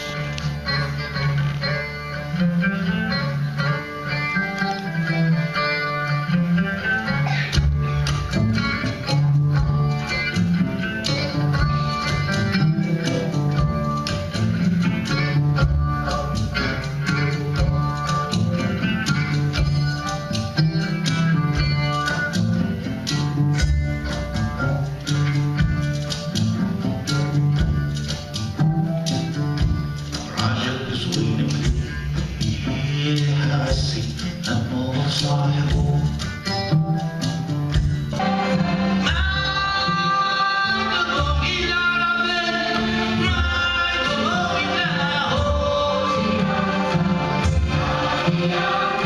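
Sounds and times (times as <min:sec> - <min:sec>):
oud plucked: 0:00.0 - 0:49.0.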